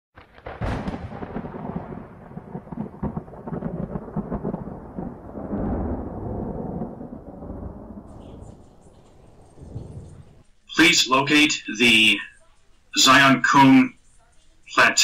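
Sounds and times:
thunder crack and rumble: 0.2 - 10.5.

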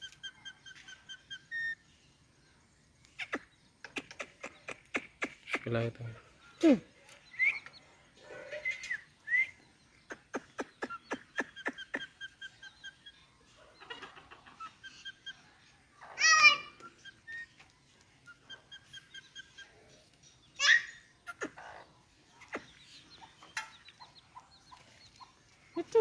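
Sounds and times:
parrot chirping and clicking: 3.0 - 5.7.

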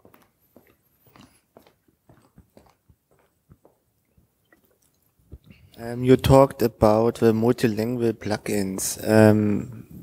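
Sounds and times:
gulping and swallowing: 4.1 - 5.8
person speaking: 5.4 - 10.0.

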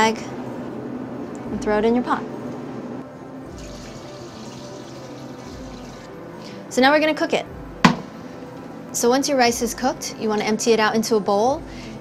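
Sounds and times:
background music: 0.1 - 12.0
milk pouring into metal pot: 3.5 - 6.1.

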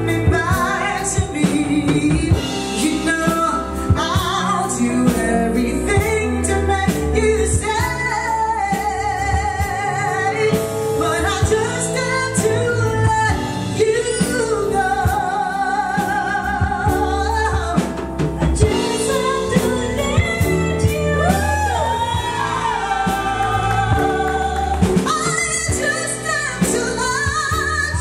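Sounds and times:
drum kit: 0.0 - 28.0
electric bass: 0.0 - 28.0
women singing a duet: 0.0 - 28.0.

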